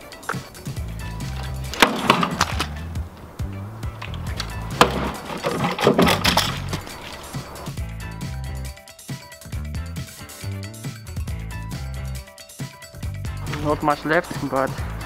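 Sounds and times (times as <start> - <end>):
background music: 0.0 - 15.0
flail whacking a coconut: 1.7 - 2.8, 4.8 - 6.4.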